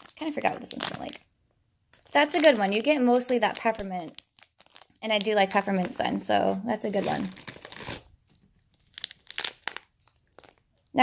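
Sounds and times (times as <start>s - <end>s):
plastic bags crinkling: 0.0s - 1.2s, 1.9s - 11.0s.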